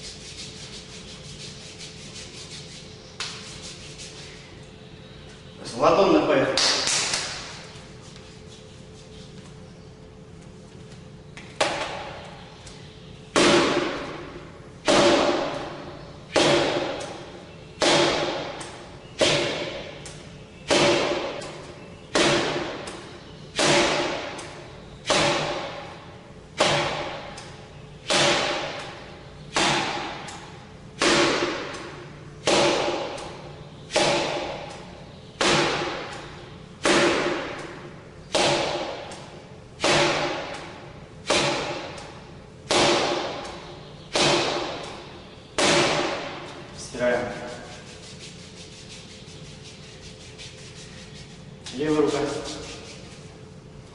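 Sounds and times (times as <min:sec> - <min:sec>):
arm strikes on striking post: 0:14.8 - 0:15.6, 0:16.3 - 0:17.0, 0:20.7 - 0:21.4, 0:23.6 - 0:24.3, 0:25.1 - 0:25.8, 0:26.6 - 0:27.2, 0:29.6 - 0:30.3, 0:32.4 - 0:33.2, 0:33.9 - 0:34.6, 0:35.4 - 0:36.1, 0:38.3 - 0:39.1, 0:39.8 - 0:40.6, 0:42.7 - 0:43.4, 0:44.1 - 0:44.8, 0:45.6 - 0:46.4.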